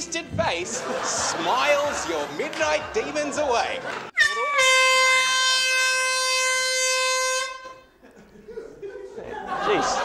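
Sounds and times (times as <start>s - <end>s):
air horn blast: 4.2s - 7.8s.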